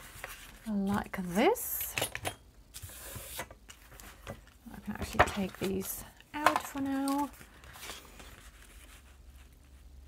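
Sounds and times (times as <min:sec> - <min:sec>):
paper rustling: 0:00.0 - 0:00.7, 0:05.0 - 0:09.8.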